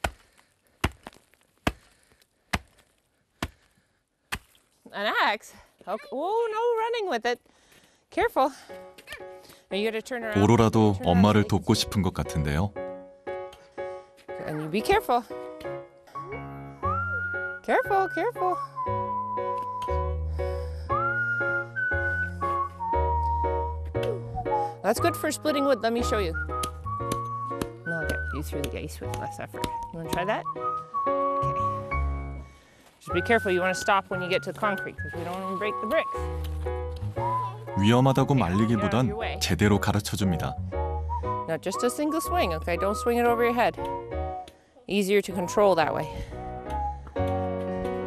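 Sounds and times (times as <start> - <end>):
axe chopping into ice: 0.8 - 1.9
whistle-like melody: 16.1 - 32.4, 33.0 - 48.0
bass line: 31.2 - 32.5.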